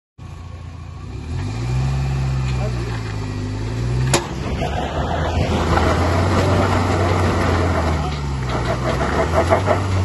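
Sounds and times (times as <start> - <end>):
four-wheel-drive engine straining: 0.2 - 10.0
tractor engine straining: 2.2 - 10.0.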